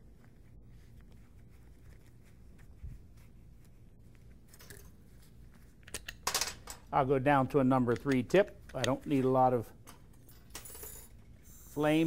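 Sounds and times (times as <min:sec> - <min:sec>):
low room hum: 0:00.0 - 0:12.0
metal parts clicking and clinking: 0:05.8 - 0:06.9, 0:09.9 - 0:11.2.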